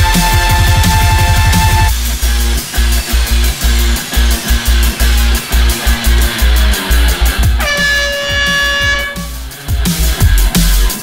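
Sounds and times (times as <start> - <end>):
music with a heavy beat: 0.0 - 11.0
vehicle horn blast: 7.6 - 9.5.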